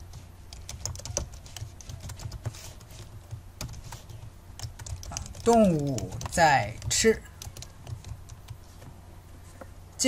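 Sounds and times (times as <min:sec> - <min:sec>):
computer keyboard typing: 0:00.0 - 0:08.6.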